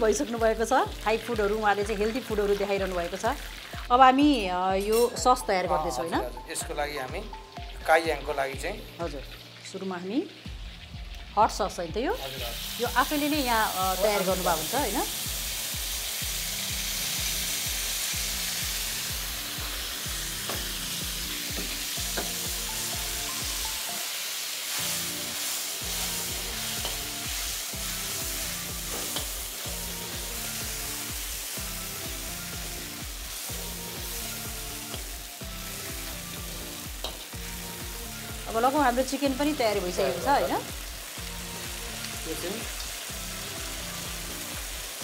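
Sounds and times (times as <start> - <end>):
low rhythmic background music: 0.0 - 45.0
sauce sizzling in a wok: 0.0 - 45.0.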